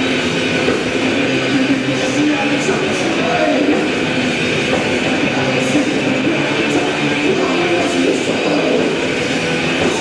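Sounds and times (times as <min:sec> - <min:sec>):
distorted electric guitars: 0:00.0 - 0:10.0
metal band playing: 0:00.0 - 0:10.0.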